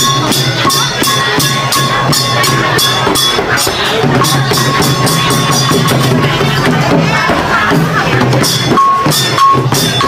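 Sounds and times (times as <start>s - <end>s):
held high tone: 0.0s - 6.7s, 8.2s - 10.0s
hand drums beating quickly: 0.0s - 10.0s.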